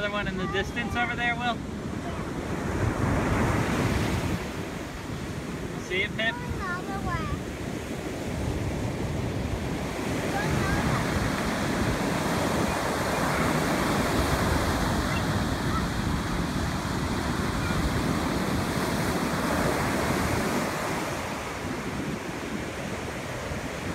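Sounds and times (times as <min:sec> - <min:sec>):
ocean surf breaking: 0:00.0 - 0:23.9.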